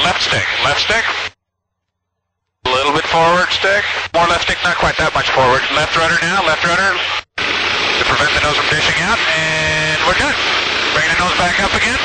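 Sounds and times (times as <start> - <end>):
man talking over headset intercom: 0.0 - 1.2, 2.6 - 7.2, 8.0 - 12.0.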